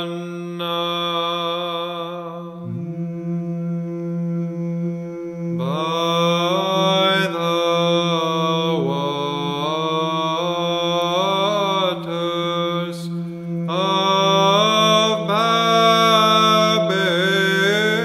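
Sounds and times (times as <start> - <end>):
sung drone note: 2.6 - 6.7, 8.4 - 9.8.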